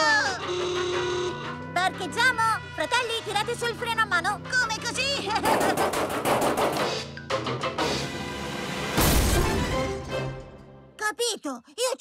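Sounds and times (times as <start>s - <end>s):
background music: 0.0s - 11.7s
rapid rattle of knocks: 5.4s - 6.8s.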